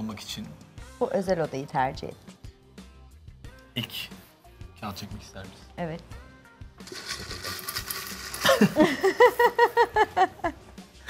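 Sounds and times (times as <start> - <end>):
paper slips rustling in glass bowl: 6.8 - 8.8
woman laughing: 8.4 - 10.7.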